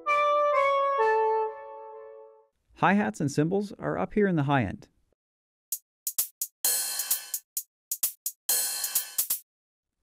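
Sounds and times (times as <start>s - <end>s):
drum machine hi-hat ticks: 5.7s - 9.4s.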